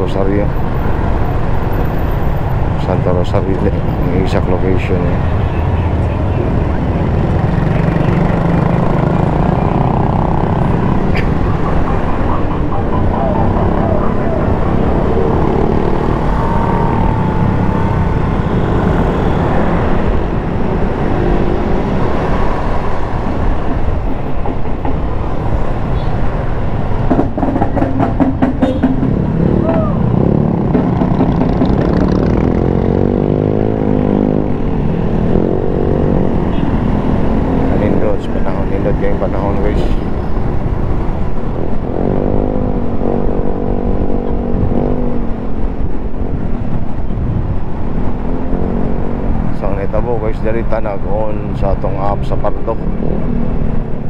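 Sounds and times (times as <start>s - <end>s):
motorcycle engine rumble: 2.8s - 24.2s.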